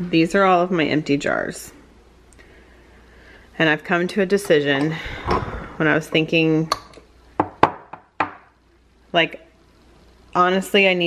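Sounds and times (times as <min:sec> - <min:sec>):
glass jars knocking on countertop: 0:06.7 - 0:08.5.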